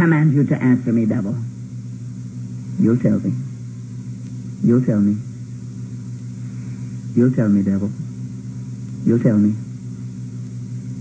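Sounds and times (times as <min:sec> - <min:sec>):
low tape hum: 0:00.0 - 0:11.0.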